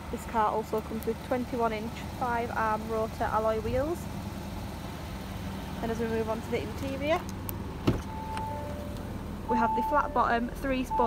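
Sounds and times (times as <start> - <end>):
car door unlatching clunk: 7.8 - 8.8.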